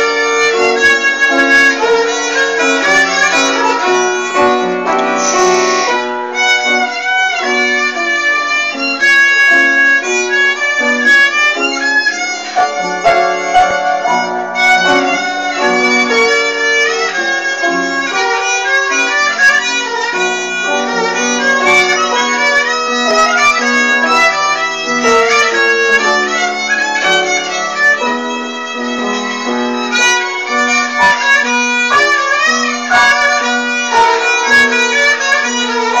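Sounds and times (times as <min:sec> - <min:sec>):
bowed fiddle solo melody: 0:00.0 - 0:36.0.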